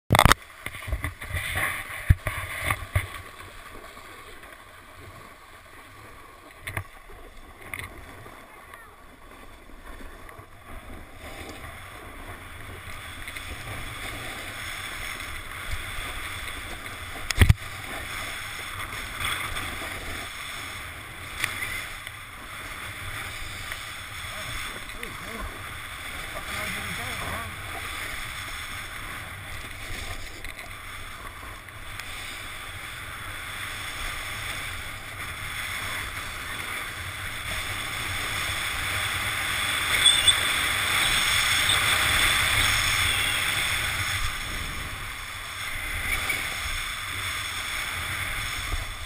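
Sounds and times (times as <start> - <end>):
snowboard scraping on snow: 10.8 - 49.0.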